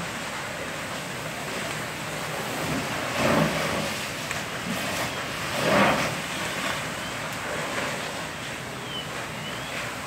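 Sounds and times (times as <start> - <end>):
fire burning with rushing noise: 0.0 - 10.0.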